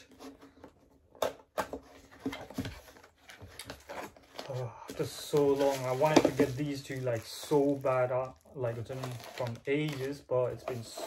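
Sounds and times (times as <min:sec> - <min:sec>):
cardboard box rustling: 0:01.7 - 0:07.0.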